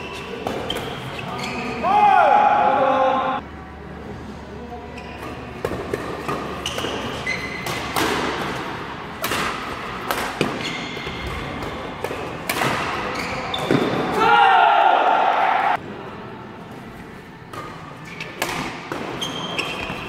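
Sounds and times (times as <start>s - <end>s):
shoes squeaking on court floor: 0.0s - 1.9s, 4.8s - 8.6s, 10.2s - 14.2s, 17.6s - 20.0s
racket hitting shuttlecock: 5.2s - 14.2s, 17.5s - 20.0s.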